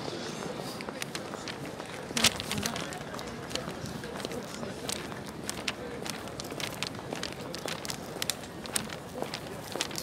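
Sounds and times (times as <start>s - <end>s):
city plaza background noise: 0.0s - 10.0s.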